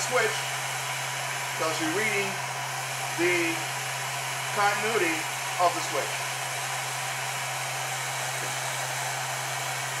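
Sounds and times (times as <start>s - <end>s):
hot air gun blowing: 0.0s - 10.0s.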